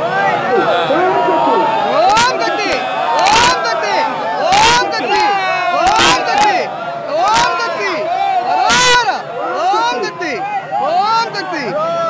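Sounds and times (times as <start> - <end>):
crowd shouting together: 0.0 - 12.0.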